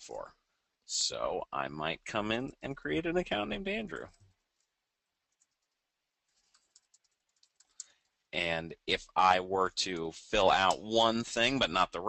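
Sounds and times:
computer keyboard typing: 5.3 - 8.1.

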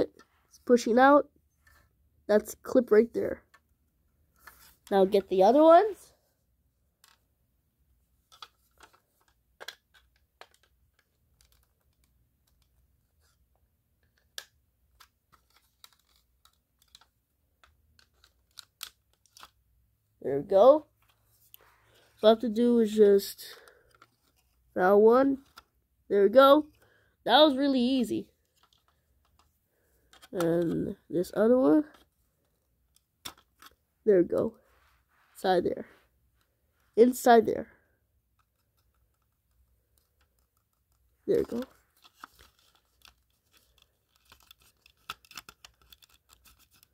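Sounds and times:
plastic clicks and scrapes: 8.3 - 13.4, 14.0 - 19.6, 38.3 - 46.9.

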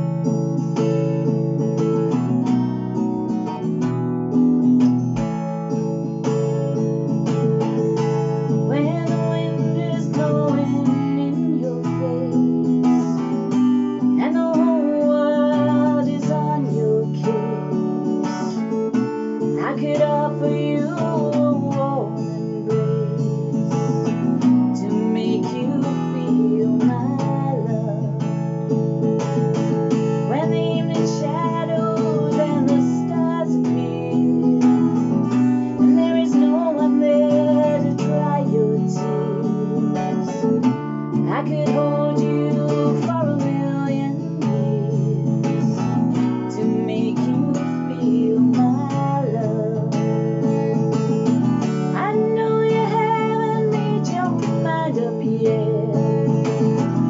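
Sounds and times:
acoustic guitar strumming chords: 0.0 - 57.0
woman singing: 0.0 - 57.0.

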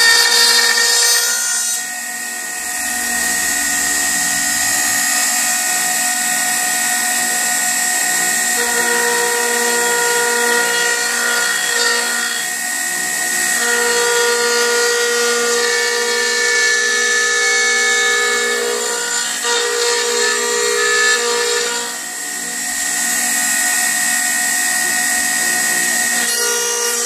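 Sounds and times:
router bit cutting wood: 0.0 - 27.0
router motor whine: 0.0 - 27.0.

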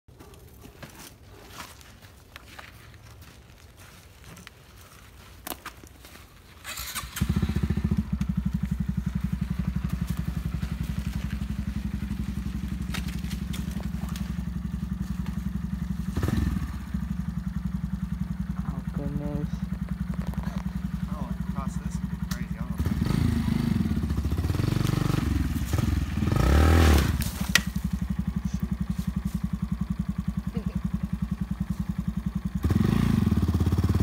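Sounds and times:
engine revving: 6.6 - 34.0
motorcycle engine idling: 6.6 - 34.0.

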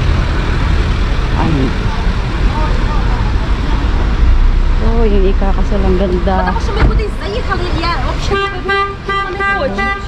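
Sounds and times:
city road traffic rumble: 0.0 - 10.0.

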